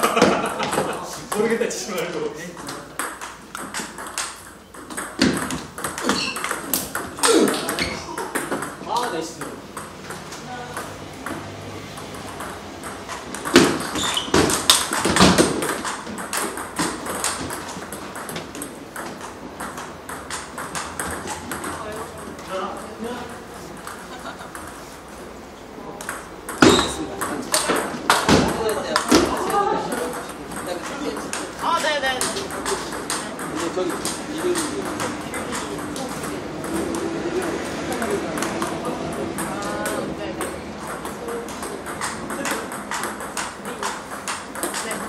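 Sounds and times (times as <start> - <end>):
table tennis ball clicks: 2.7 - 11.4, 12.0 - 22.4, 38.3 - 45.0
people's voices: 25.7 - 45.0.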